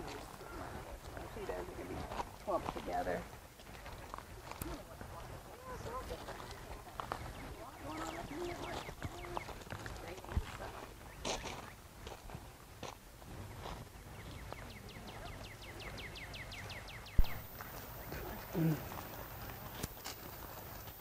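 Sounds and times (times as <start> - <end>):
sharp knock: 17.2 - 17.5.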